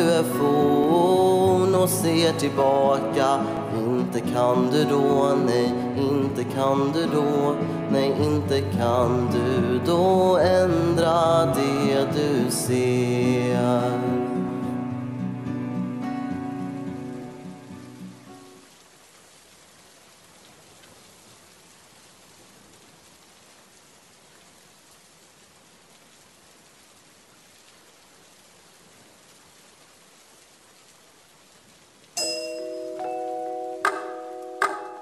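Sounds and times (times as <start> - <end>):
recorded rain hiss: 0.0 - 35.0
music with ringing notes: 32.2 - 35.0
sharp struck notes: 32.2 - 35.0.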